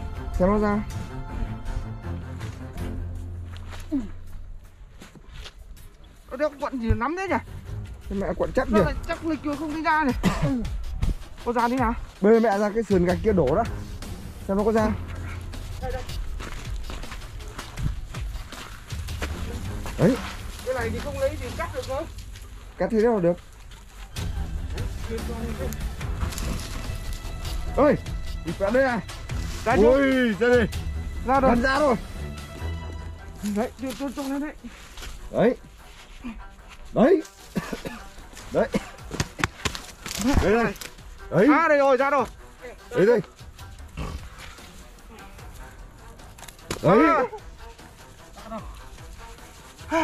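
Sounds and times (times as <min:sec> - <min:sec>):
background music: 0:00.0 - 0:50.0
footsteps on gravelly sand: 0:07.5 - 0:30.0, 0:47.6 - 0:50.0.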